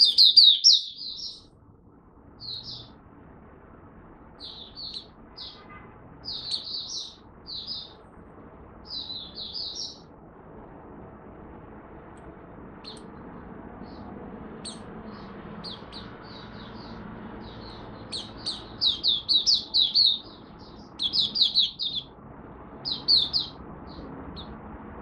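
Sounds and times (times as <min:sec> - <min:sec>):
bird chirping: 0:00.0 - 0:01.5, 0:02.4 - 0:03.0, 0:04.3 - 0:08.0, 0:08.8 - 0:10.1, 0:12.8 - 0:22.2, 0:22.8 - 0:24.6.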